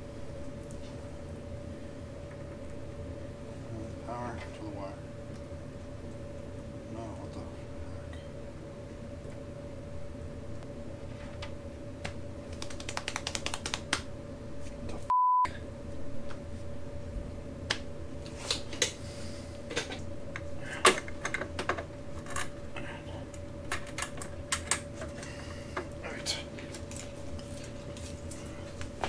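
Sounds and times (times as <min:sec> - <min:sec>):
faint steady hum: 0:00.0 - 0:29.0
censor bleep: 0:15.1 - 0:15.6.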